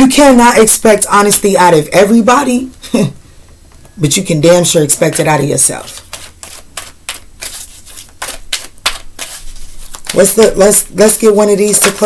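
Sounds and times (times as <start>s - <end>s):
cards being shuffled: 5.9s - 10.6s, 11.6s - 12.0s.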